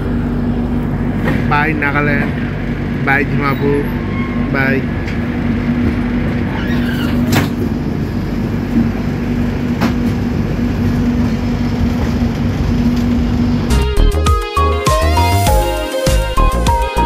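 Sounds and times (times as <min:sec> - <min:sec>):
train rumble and hum: 0:00.0 - 0:14.2
music: 0:13.7 - 0:17.0.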